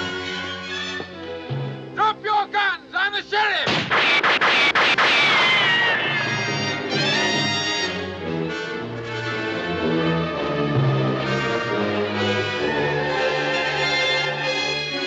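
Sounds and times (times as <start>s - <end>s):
orchestral film score: 0.0s - 15.0s
bullet striking rock: 3.6s - 5.6s
gunshots: 3.6s - 7.3s
falling ricochet whine: 3.7s - 7.3s.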